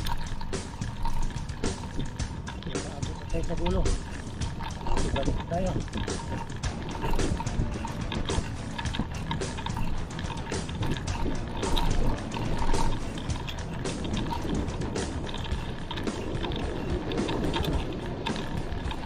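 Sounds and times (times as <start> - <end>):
bike clicks and rattles: 0.0 - 19.0.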